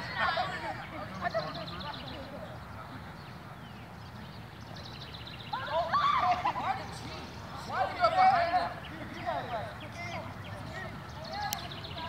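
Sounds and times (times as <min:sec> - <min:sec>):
young people shrieking and laughing: 0:00.0 - 0:01.4, 0:05.5 - 0:07.0.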